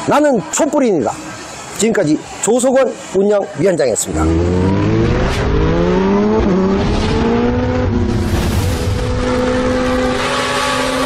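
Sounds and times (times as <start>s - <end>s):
car engine revving up: 4.0s - 11.0s.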